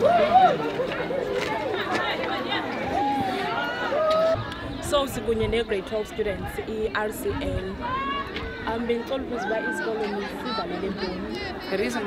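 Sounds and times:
overlapping chatter of teenagers: 0:00.0 - 0:12.0.

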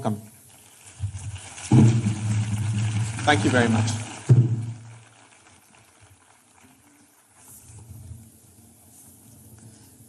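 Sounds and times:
faint hall noise: 0:00.0 - 0:10.0.

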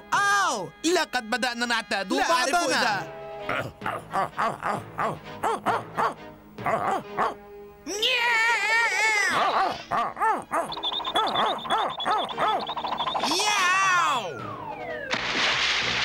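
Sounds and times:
cartoon cat yowling: 0:08.0 - 0:12.6, 0:13.2 - 0:14.3
cartoon vocal squawks: 0:08.8 - 0:14.2
cartoon music: 0:10.1 - 0:15.1.

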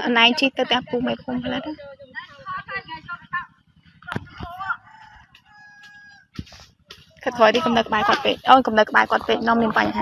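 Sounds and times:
people talking: 0:00.0 - 0:05.0, 0:07.2 - 0:10.0
rooster crowing: 0:04.6 - 0:06.4.

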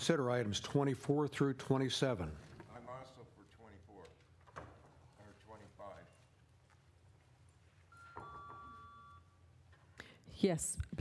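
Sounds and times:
two-tone electronic chime: 0:07.9 - 0:09.4.

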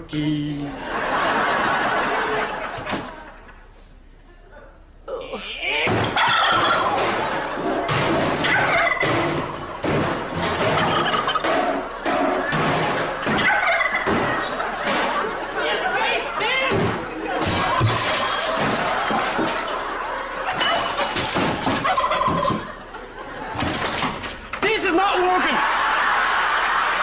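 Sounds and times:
turkey gobbling: 0:06.2 - 0:06.9, 0:08.4 - 0:09.8, 0:10.6 - 0:11.8, 0:13.2 - 0:14.7, 0:21.8 - 0:22.9
voices and crowd noise: 0:11.4 - 0:17.8.

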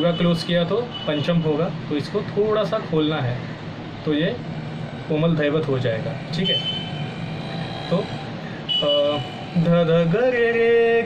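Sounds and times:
man speaking: 0:00.0 - 0:06.8, 0:07.8 - 0:08.3.

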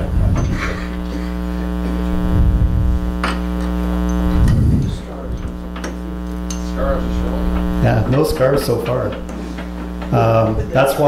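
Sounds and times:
steady electrical hum: 0:00.0 - 0:11.0
low bumps: 0:01.7 - 0:06.4.

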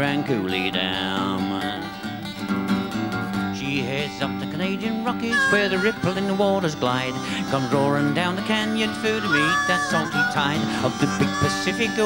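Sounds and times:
person singing: 0:00.0 - 0:02.2, 0:03.5 - 0:12.0
acoustic guitar strumming: 0:00.0 - 0:12.0.

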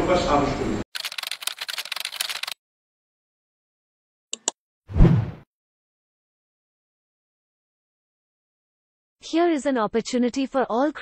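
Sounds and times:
keyboard typing clicks: 0:01.0 - 0:02.6, 0:04.4 - 0:04.6.

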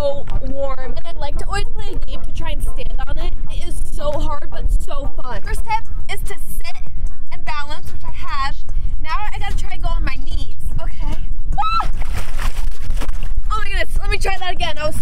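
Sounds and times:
wind rumble on microphone: 0:00.0 - 0:15.0
water splash: 0:11.8 - 0:13.3.

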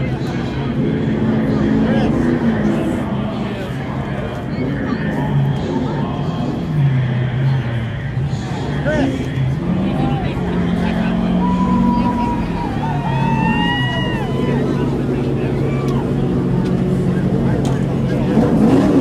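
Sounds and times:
crowd chatter and calls: 0:00.0 - 0:19.0
low engine drone: 0:00.0 - 0:19.0.

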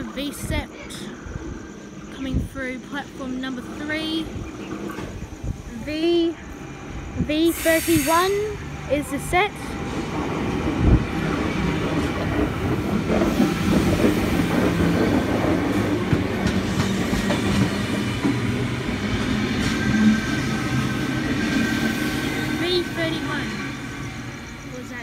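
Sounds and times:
train wheels rumbling on rails: 0:00.0 - 0:25.0.

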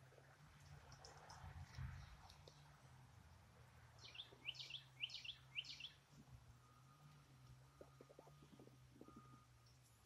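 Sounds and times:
songbird chirping: 0:03.9 - 0:10.0.

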